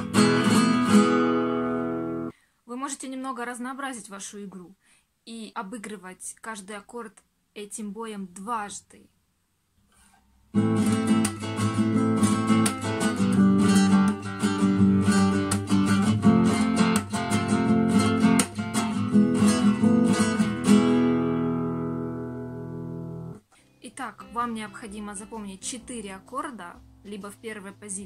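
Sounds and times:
classical guitar strumming: 0.0 - 2.3, 10.5 - 23.4.

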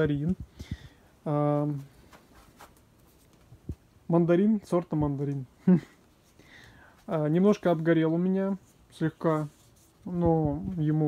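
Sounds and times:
rustling and handling noise: 0.0 - 11.0.

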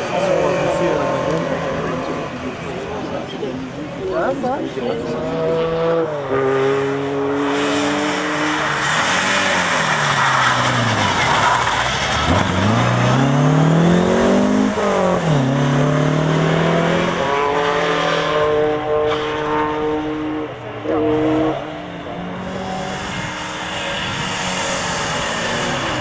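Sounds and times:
rally car engine revving: 0.0 - 26.0.

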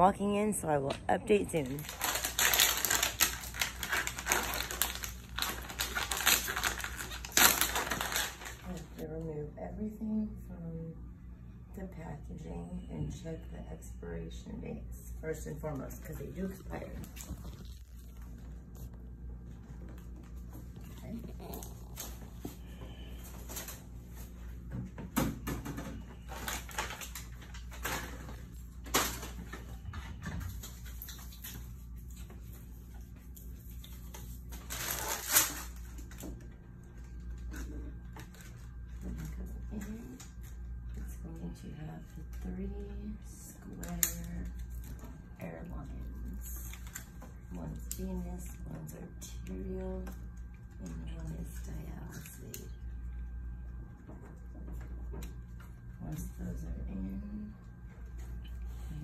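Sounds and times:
steady low hum: 0.0 - 59.0
plastic packaging crinkling: 1.3 - 9.0, 16.4 - 19.0, 26.1 - 29.7, 30.4 - 40.6, 46.2 - 48.6.

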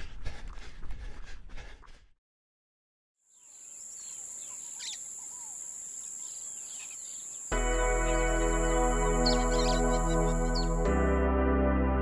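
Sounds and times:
birds chirping: 3.4 - 11.2
loud held music chord: 7.5 - 12.0.

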